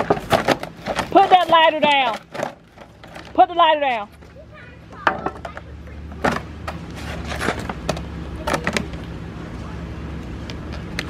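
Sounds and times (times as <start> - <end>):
metal and brick knocking and clanking: 5.0 - 8.9.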